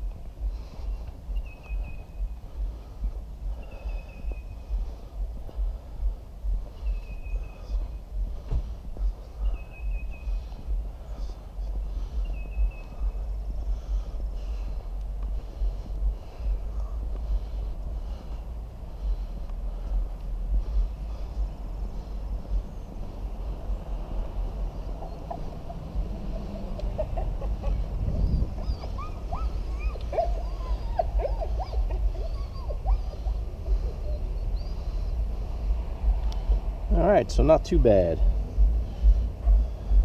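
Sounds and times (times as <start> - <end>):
birds chirping: 0.0 - 40.0
wind buffeting microphone: 0.0 - 40.0.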